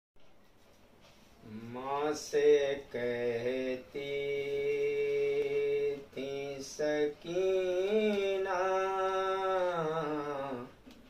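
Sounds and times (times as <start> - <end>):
man singing a held note: 1.4 - 10.8.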